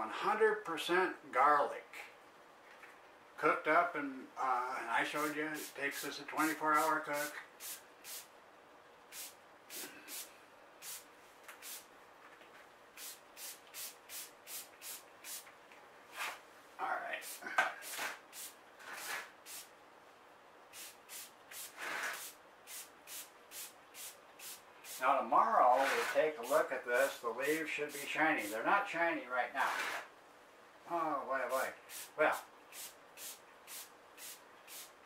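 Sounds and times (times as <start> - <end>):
pump spray bottle hissing: 5.2 - 6.1, 6.7 - 8.3, 9.1 - 11.9, 13.0 - 15.5, 17.2 - 19.7, 20.7 - 25.0, 25.7 - 26.7, 27.4 - 28.6, 31.9 - 35.0.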